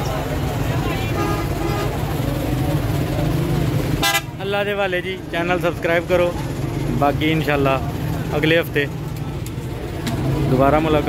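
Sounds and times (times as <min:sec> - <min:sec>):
constant wash of noise: 0:00.0 - 0:11.0
faint crowd voices: 0:00.0 - 0:11.0
low vehicle engine hum: 0:00.0 - 0:11.0.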